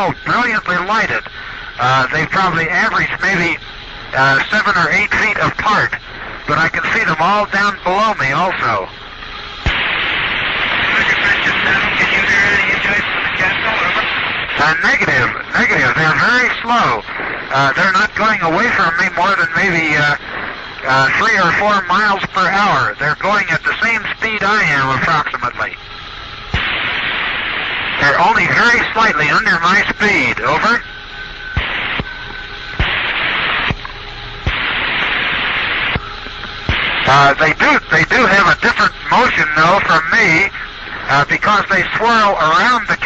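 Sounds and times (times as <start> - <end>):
man speaking over radio: 0.0 - 8.9, 10.8 - 25.8, 28.0 - 30.9, 37.0 - 43.0
radio static hiss: 0.0 - 43.0
static switching clicks: 0.0 - 43.0
faint steady whistle: 17.8 - 42.8.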